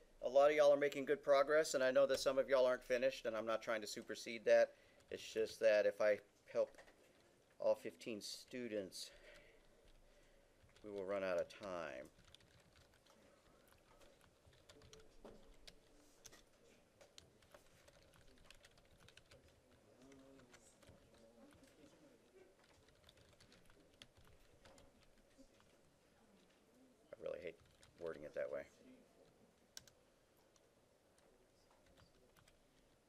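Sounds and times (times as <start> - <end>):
computer keyboard typing: 9.1 - 26.6, 27.2 - 28.3, 29.2 - 30.6, 31.6 - 33.0.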